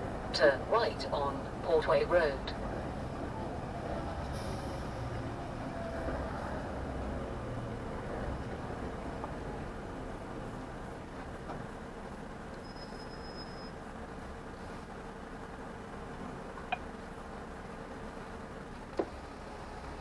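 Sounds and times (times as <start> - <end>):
road noise: 0.0 - 20.0
truck engine rumble: 0.0 - 20.0.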